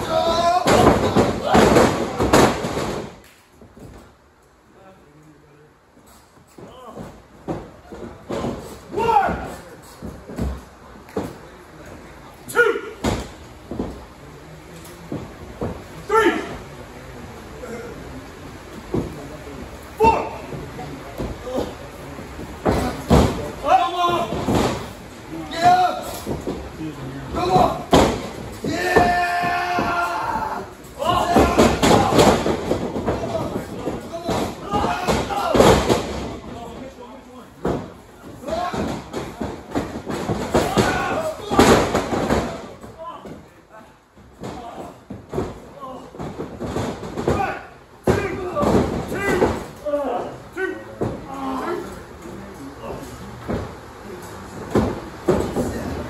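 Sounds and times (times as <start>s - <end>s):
voices and shouting: 0.0s - 2.5s, 8.4s - 10.0s, 12.5s - 13.2s, 16.0s - 16.6s, 19.8s - 21.8s, 22.6s - 37.5s, 38.2s - 45.1s, 47.2s - 53.6s
heavy thuds on ring canvas: 0.0s - 4.1s, 21.2s - 36.8s, 37.6s - 43.5s, 44.2s - 49.8s
bodies slamming on wrestling mat: 27.4s - 36.4s, 37.6s - 42.7s.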